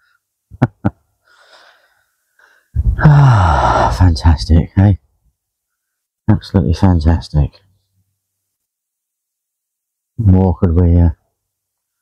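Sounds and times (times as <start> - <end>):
man chuckling: 0.5 - 1.1.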